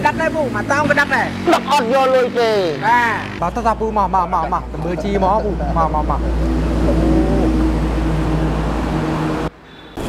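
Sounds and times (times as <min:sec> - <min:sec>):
low engine-like hum: 0:04.1 - 0:09.5.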